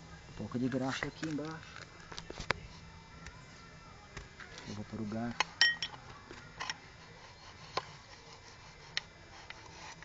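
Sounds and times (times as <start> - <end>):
metal clinks and taps: 5.6 - 6.0.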